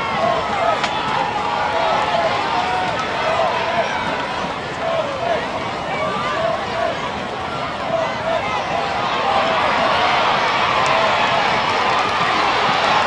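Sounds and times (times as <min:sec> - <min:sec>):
crowd talking and calling out: 0:00.0 - 0:13.0.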